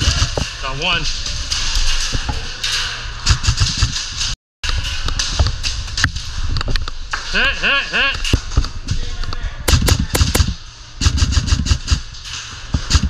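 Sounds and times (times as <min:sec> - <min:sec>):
airsoft guns firing: 0:09.7 - 0:12.0.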